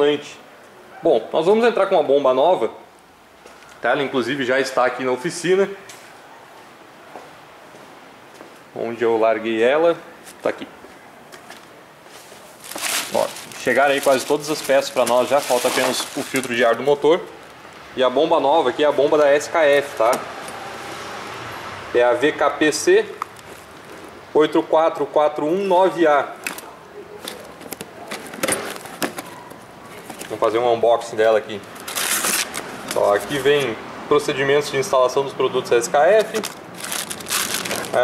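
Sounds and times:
cardboard box rustling: 12.1 - 16.9, 27.2 - 30.5, 31.7 - 33.6, 36.2 - 38.0
plastic bag crinkling: 12.4 - 17.6, 31.7 - 33.4, 36.1 - 38.0.

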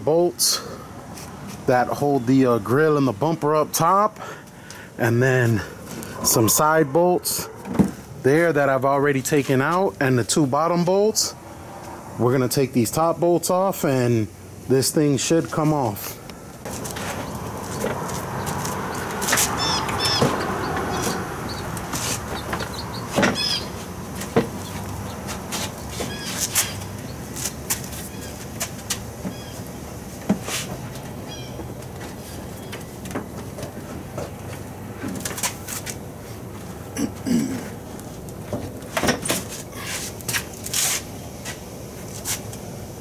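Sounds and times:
birds chirping: 16.7 - 28.4, 31.1 - 31.7, 32.3 - 33.0.

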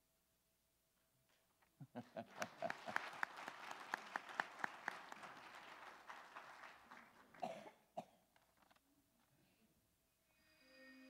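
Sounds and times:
audience applause: 2.0 - 7.7.

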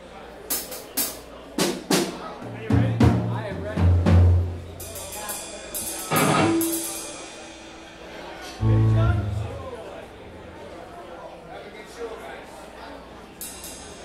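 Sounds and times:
drum kit hits: 6.0 - 7.2, 8.6 - 10.0.

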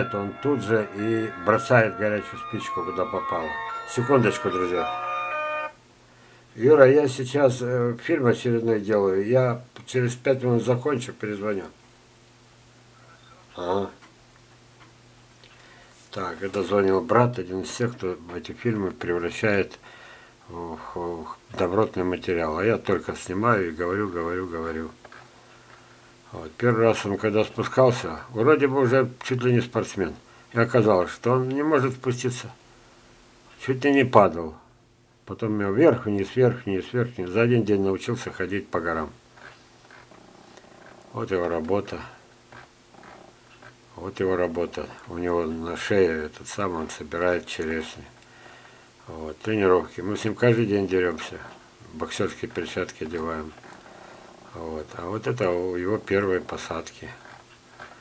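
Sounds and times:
faint low hum: 0.0 - 58.0
soft breath-like noises: 15.5 - 16.2, 19.8 - 20.5, 48.2 - 49.0.

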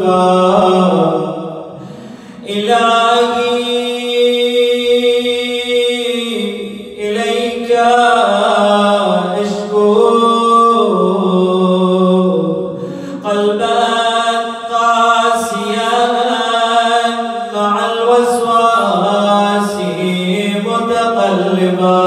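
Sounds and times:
man chanting into a microphone: 0.0 - 22.0.

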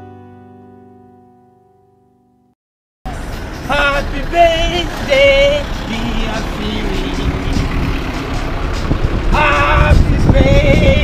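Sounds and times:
street low rumble: 3.1 - 11.0.

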